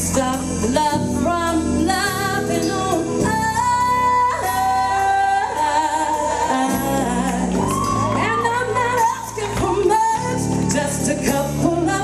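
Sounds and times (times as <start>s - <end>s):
live musical accompaniment: 0.0s - 12.0s.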